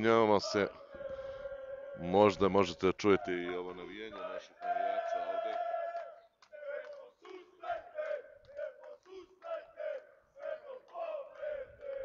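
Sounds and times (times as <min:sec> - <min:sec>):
football supporters chanting: 0:00.0 - 0:12.0.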